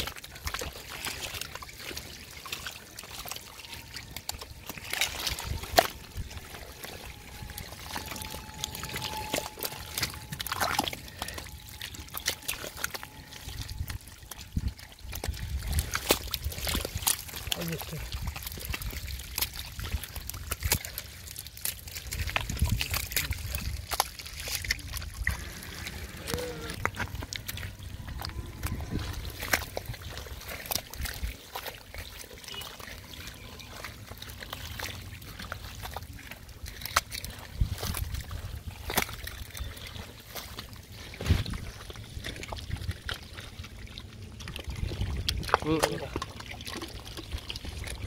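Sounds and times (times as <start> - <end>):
hands squelching in wet mud: 0.0 - 48.0
muddy water trickling and sloshing: 0.0 - 48.0.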